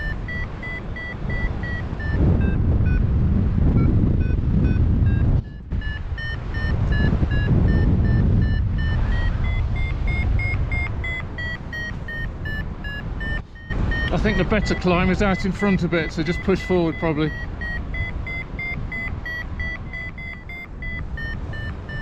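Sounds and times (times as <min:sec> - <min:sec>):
variometer short beeps: 0:00.0 - 0:03.1, 0:03.7 - 0:22.0
wind rushing over microphone: 0:00.0 - 0:22.0.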